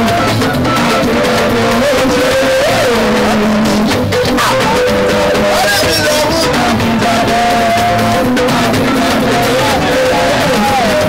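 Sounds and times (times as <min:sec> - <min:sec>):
live band music with guitar: 0:00.0 - 0:11.0.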